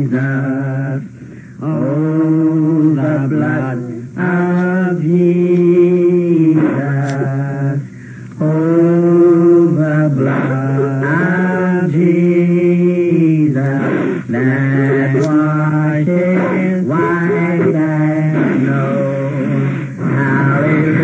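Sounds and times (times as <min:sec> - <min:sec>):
voices chanting: 0:00.0 - 0:07.8, 0:08.4 - 0:21.0.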